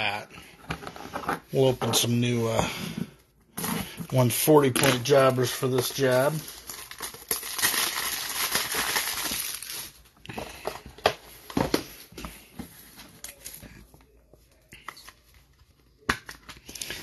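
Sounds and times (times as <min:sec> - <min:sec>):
plastic wrapper crinkling and tearing: 0:04.9 - 0:10.1.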